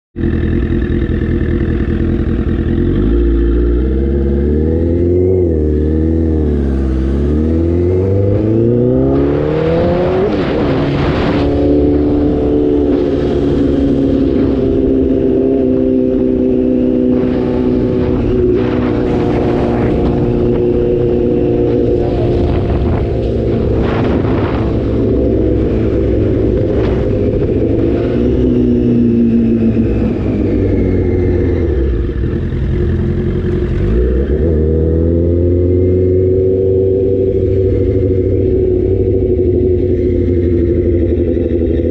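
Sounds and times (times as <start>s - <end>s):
motorcycle engine accelerating: 0.2s - 41.9s
wind rushing over microphone: 4.8s - 32.5s.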